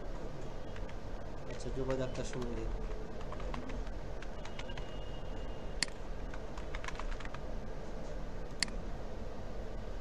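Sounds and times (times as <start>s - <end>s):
steady low hum: 0.0s - 10.0s
computer keyboard key clicks: 5.8s - 7.4s.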